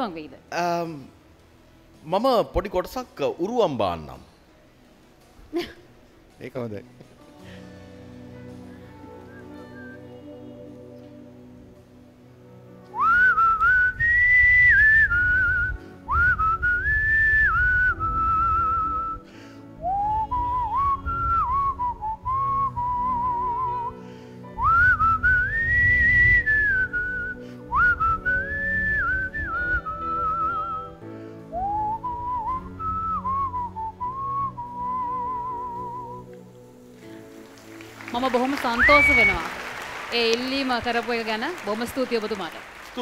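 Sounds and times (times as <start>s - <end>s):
faint soft music: 0.0s - 43.0s
man whistling a slow melody: 9.0s - 10.5s, 12.9s - 36.4s, 38.8s - 39.6s.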